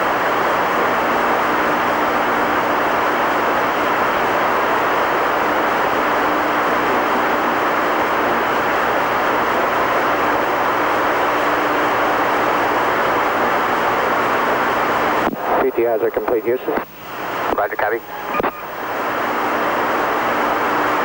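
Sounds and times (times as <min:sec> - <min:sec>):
radio channel hiss: 0:15.1 - 0:21.0
faint low hum: 0:15.2 - 0:21.0.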